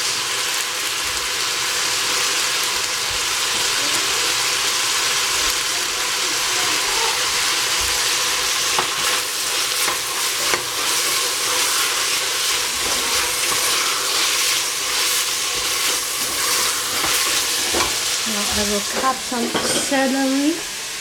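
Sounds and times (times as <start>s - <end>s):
vegetables sizzling in a pot: 0.0s - 21.0s.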